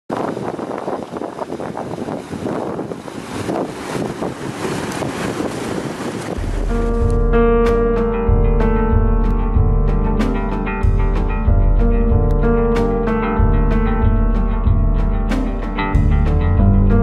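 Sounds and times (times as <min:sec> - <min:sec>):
stream rushing and gurgling: 0:00.1 - 0:07.3
music with deep bass: 0:06.4 - 0:17.0.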